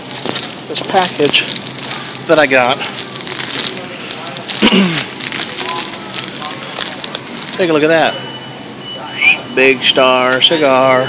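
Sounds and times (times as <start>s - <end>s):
crackling handling noise: 0.0s - 8.1s
murmur of busy store: 0.0s - 11.0s.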